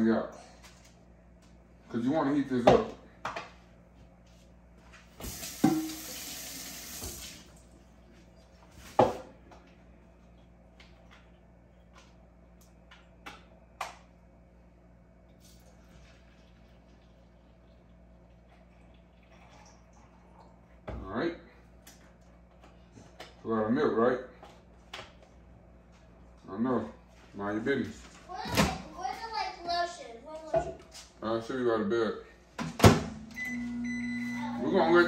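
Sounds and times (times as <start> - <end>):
liquid pouring: 15.3 - 20.8.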